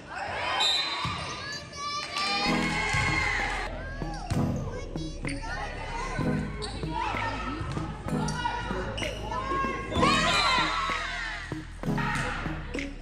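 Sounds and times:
people shouting in a gym: 0.0 - 12.8.

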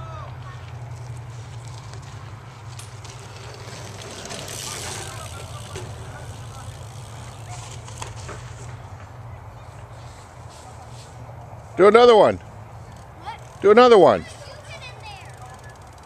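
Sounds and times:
bike tyres rushing on dirt: 0.0 - 11.6.

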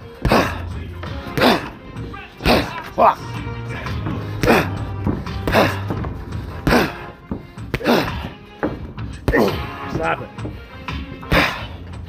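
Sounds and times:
background music: 0.0 - 12.0
boxing glove punches thudding: 0.2 - 1.8, 4.1 - 10.1, 11.2 - 11.7.

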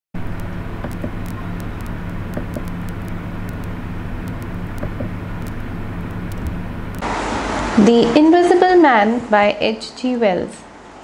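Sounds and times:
faint scattered clicks: 0.2 - 7.0
steady low hum: 0.2 - 7.8.

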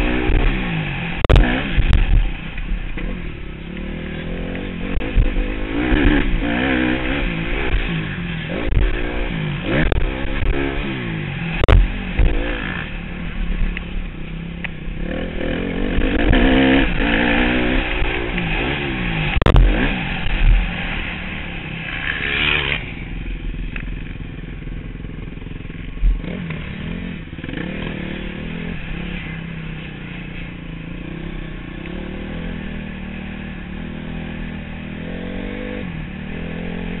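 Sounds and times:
motorbike engine revving: 0.0 - 37.0.

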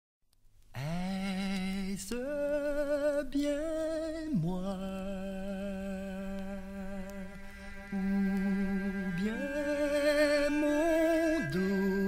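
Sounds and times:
vinyl record crackle: 0.3 - 12.0
man humming held notes: 5.1 - 12.0.

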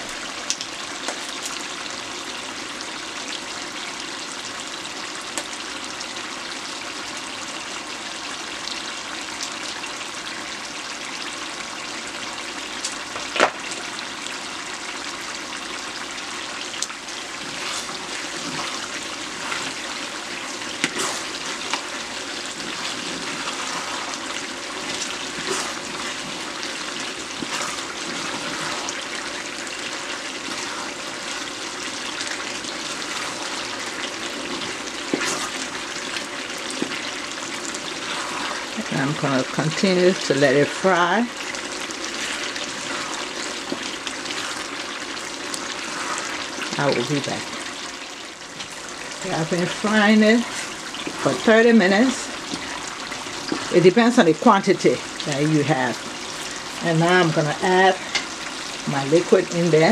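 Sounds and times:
vegetables sizzling in oil: 0.0 - 59.9.

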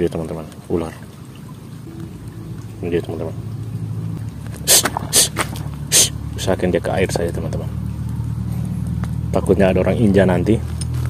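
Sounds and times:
steady low hum: 1.6 - 10.4.

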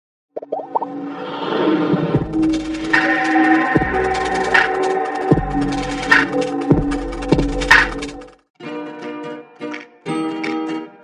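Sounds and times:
electronic music: 0.4 - 1.0, 2.2 - 8.4
short rising blips: 0.4 - 5.2.

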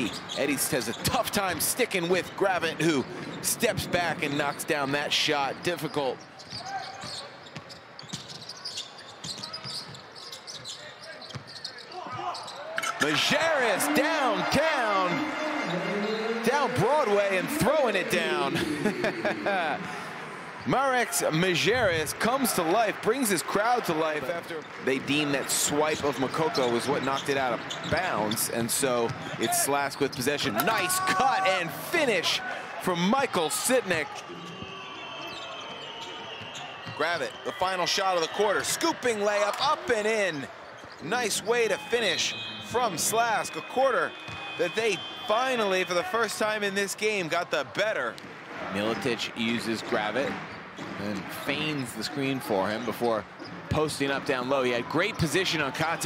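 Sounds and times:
low arena background: 0.0 - 56.0.

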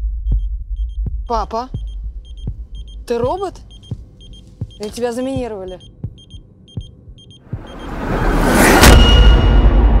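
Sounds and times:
high electronic beeping: 1.8 - 5.0, 5.7 - 8.0
rising whoosh: 7.5 - 10.0.

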